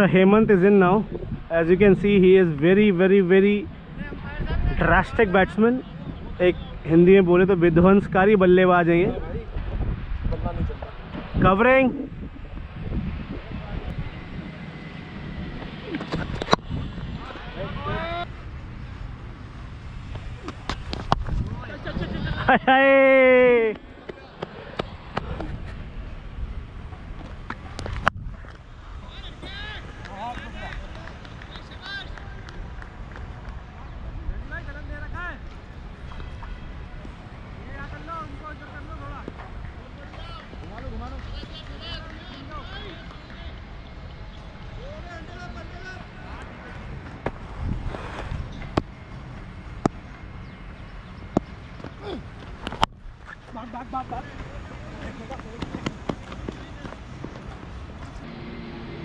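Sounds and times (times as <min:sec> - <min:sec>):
wind rumble on microphone: 0:00.0 - 0:22.7, 0:24.9 - 0:29.2, 0:46.3 - 0:58.3.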